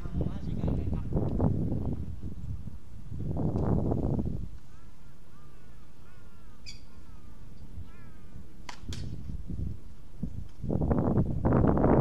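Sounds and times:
small birds chirping: 4.6 - 8.4.

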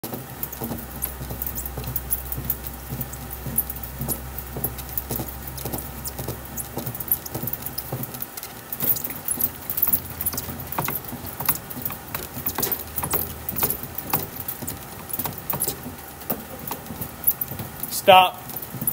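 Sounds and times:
bat rolling machine clicks and crackles: 0.0 - 18.9
low hum: 0.0 - 18.9.

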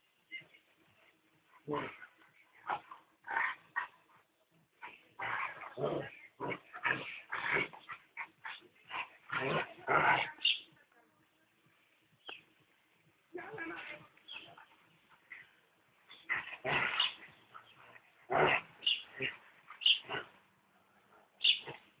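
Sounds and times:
dogs vocalising while play-fighting: 1.6 - 10.7, 13.4 - 20.5, 21.3 - 22.0.

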